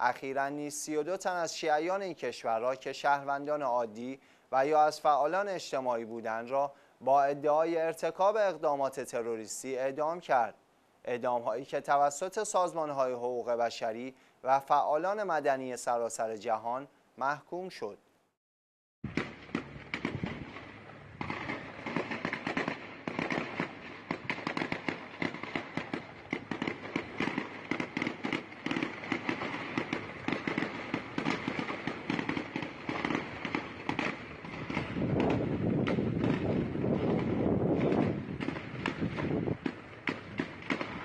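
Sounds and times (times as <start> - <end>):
rapid gunfire: 19.1 - 41.0.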